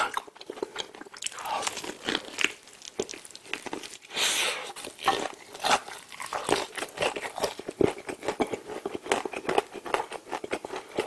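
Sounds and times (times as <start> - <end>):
chewing and wet smacking: 0.0 - 4.1, 4.7 - 11.0.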